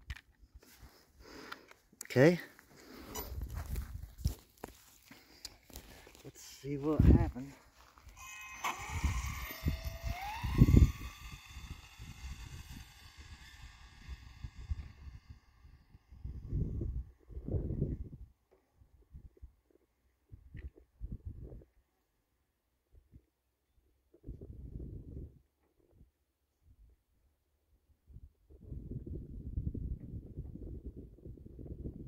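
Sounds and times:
rc car electric motor whining: 0:08.0 - 0:16.9.

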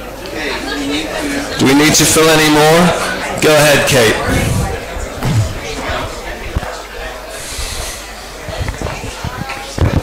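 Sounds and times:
indistinct low voices: 0:02.6 - 0:10.0.

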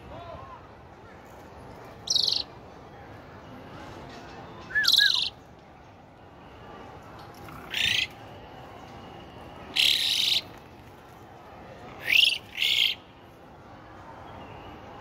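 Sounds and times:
starling harsh calls: 0:02.0 - 0:02.4, 0:04.7 - 0:05.3, 0:07.7 - 0:08.1, 0:09.7 - 0:10.5, 0:12.0 - 0:13.0.

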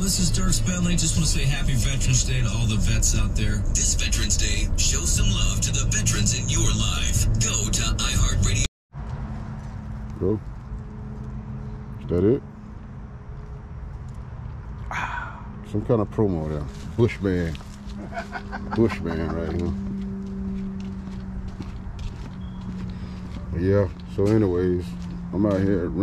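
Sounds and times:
steady low hum: 0:00.0 - 0:26.0
man's wordless vocal sound: 0:14.9 - 0:15.6
footsteps on concrete: 0:17.5 - 0:25.7.

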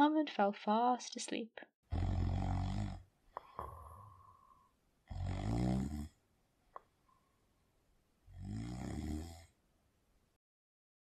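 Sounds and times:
man snoring: 0:01.9 - 0:06.2, 0:08.3 - 0:09.5.

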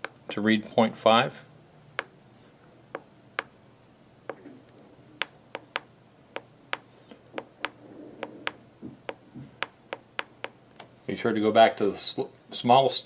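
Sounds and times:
faint steady hum: 0:00.0 - 0:13.0
keypad button clicks: 0:05.2 - 0:10.6.

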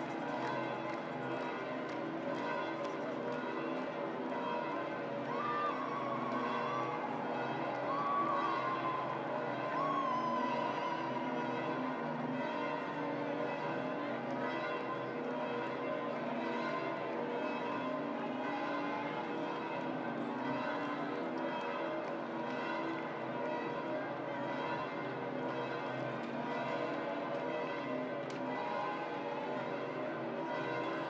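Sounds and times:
large church bells pealing: 0:00.0 - 0:31.0.

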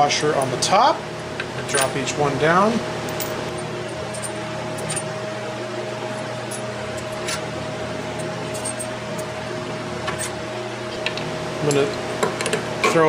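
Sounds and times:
steady mechanical hum: 0:00.0 - 0:13.0.

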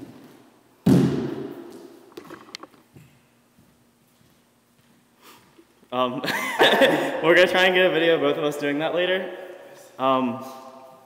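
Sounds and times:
loud thud: 0:00.8 - 0:01.6.

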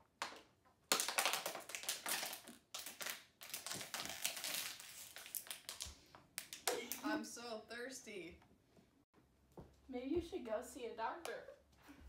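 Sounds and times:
plastic water bottle crinkling: 0:00.2 - 0:06.5.

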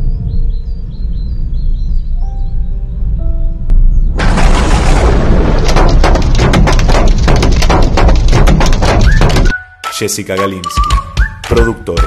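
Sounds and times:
deep rumble: 0:00.0 - 0:09.5
hard knocks on windshield: 0:05.6 - 0:09.5.

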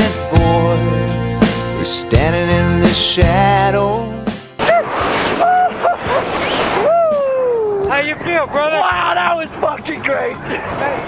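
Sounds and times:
background music: 0:00.0 - 0:04.6.

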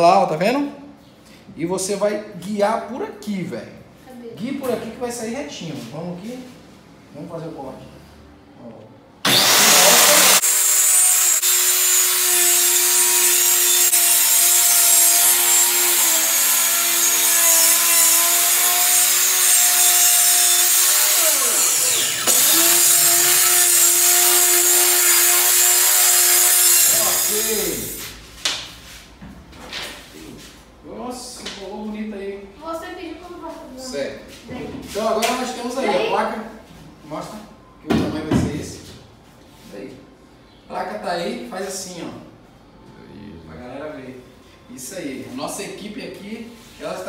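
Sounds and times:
power saw cutting plywood: 0:09.2 - 0:28.0.

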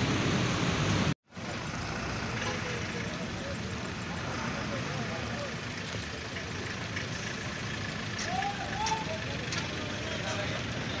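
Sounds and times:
truck engine rumbling: 0:00.0 - 0:11.0
voices of people: 0:02.3 - 0:11.0.

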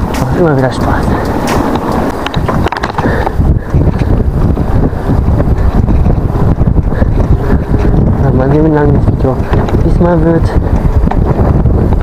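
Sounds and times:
rumble of bike tyres: 0:00.0 - 0:12.0
wind buffeting microphone: 0:00.0 - 0:12.0.

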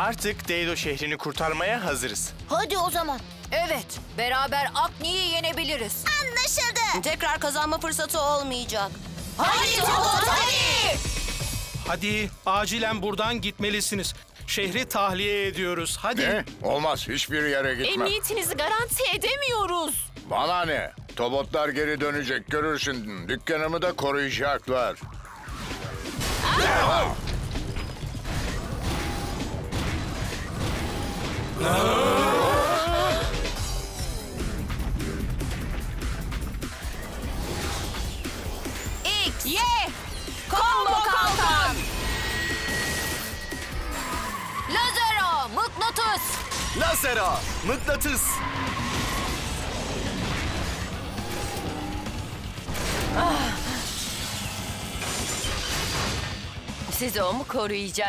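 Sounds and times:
dramatic background music: 0:00.0 - 0:58.0.

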